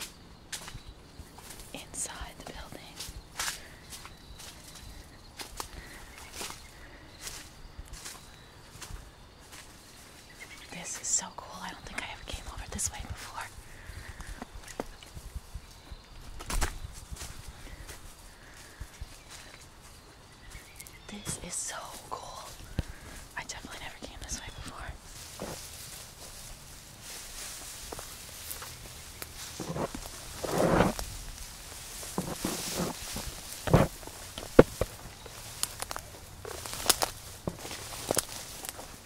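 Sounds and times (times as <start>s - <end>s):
footsteps through dry leaves: 1.4s - 10.6s, 24.4s - 39.0s
twigs snapping: 16.4s - 17.4s, 27.4s - 39.0s.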